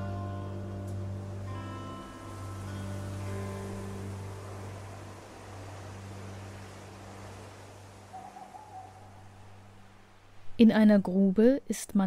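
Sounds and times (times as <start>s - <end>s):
background music drone: 0.0s - 8.0s.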